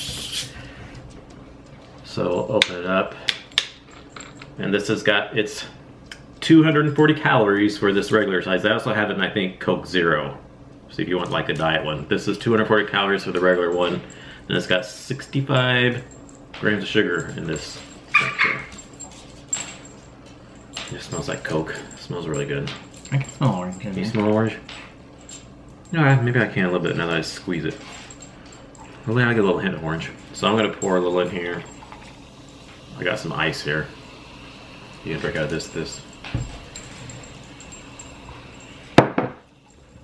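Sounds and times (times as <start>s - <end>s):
person sniffing: 0.0s - 0.8s.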